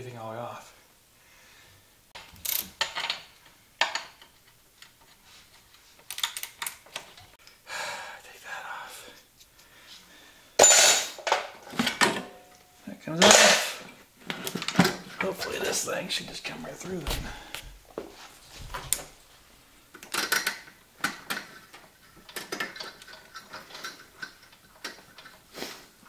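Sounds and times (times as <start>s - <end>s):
metal tools clinking: 10.6s - 13.8s.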